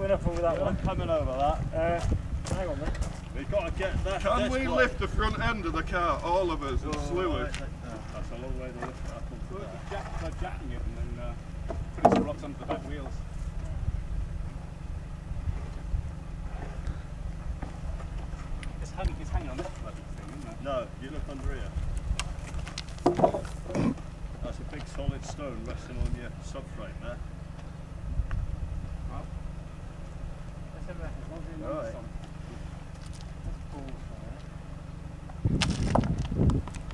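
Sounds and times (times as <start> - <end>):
wind buffeting microphone: 0.0 - 5.9, 13.6 - 17.6, 35.4 - 36.9
men talking: 0.0 - 14.0, 17.7 - 22.5, 23.1 - 27.3, 28.9 - 34.6
steady low rumble: 0.0 - 36.9.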